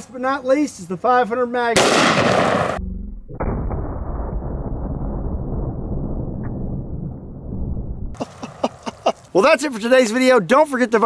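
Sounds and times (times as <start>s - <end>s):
slowed-down gunshot boom: 1.8s - 8.2s.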